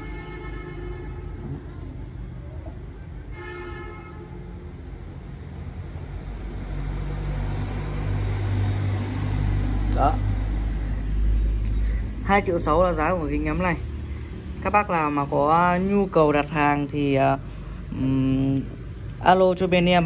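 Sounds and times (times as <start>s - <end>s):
vehicle engine rumbling: 4.6s - 20.0s.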